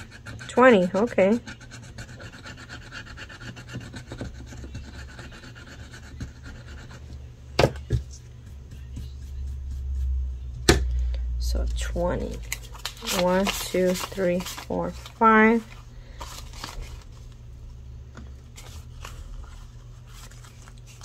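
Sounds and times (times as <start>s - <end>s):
metal tool scratching card: 0.0s - 7.0s.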